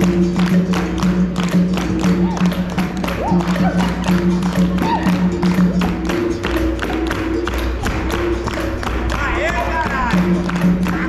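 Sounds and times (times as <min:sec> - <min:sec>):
group hand-clapping: 0:00.0 - 0:11.0
hand drum beating: 0:00.0 - 0:11.0.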